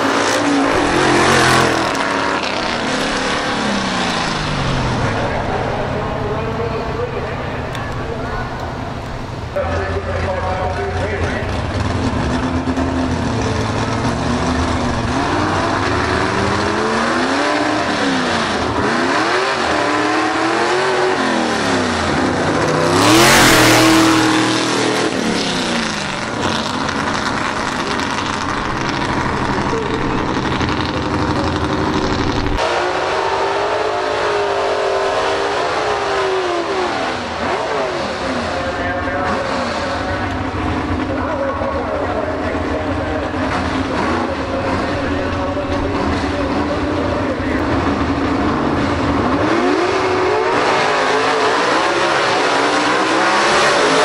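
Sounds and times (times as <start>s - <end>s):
drag car engines racing: 0.0s - 54.0s.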